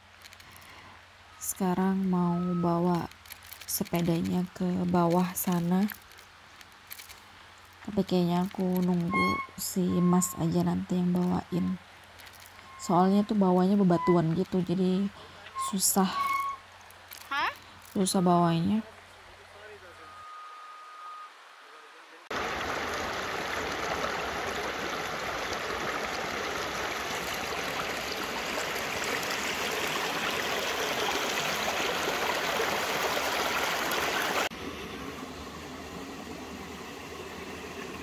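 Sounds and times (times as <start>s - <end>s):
river water rushing over rocks: 22.3s - 36.2s.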